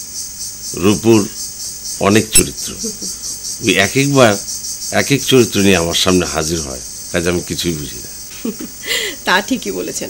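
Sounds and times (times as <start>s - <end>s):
crickets chirping: 0.0s - 10.0s
man speaking: 0.7s - 1.4s, 2.0s - 8.2s.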